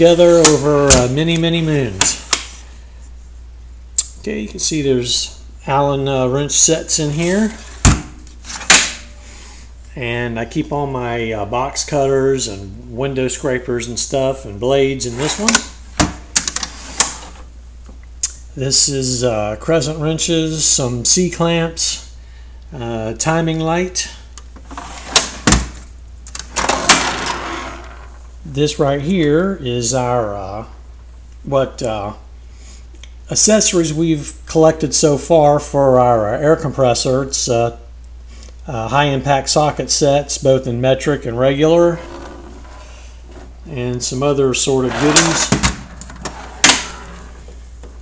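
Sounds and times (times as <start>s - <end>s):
sharp click: 4.0s - 4.2s
drawer sliding with rattling contents: 24.7s - 25.8s, 26.5s - 28.0s, 44.9s - 47.4s.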